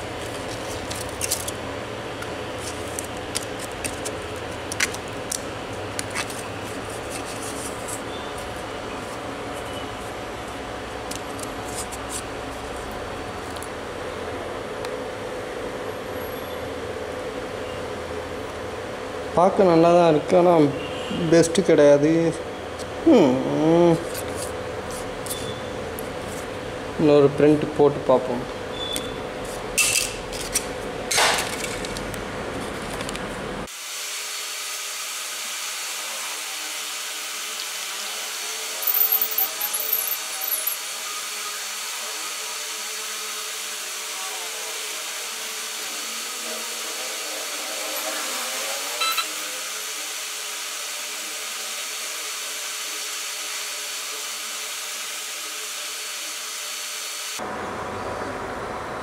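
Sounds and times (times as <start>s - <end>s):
stepper motors whining: 38.8s - 41.3s, 46.9s - 49.6s.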